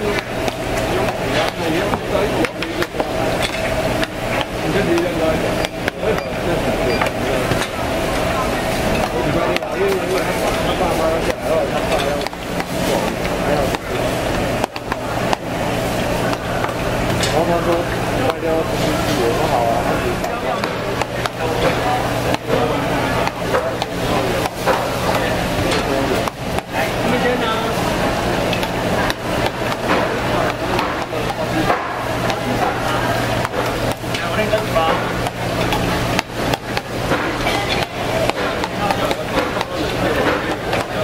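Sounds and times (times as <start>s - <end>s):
market chatter: 0.0s - 41.0s
steady low hum: 0.0s - 41.0s.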